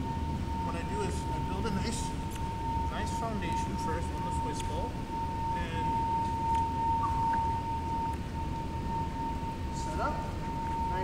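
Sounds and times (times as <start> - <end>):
steady high-pitched tone: 0.0 - 11.0.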